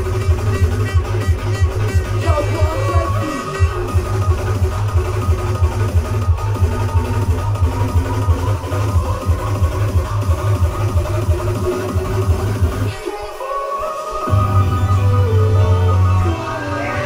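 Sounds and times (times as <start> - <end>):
electronic dance music: 0.0 - 17.0.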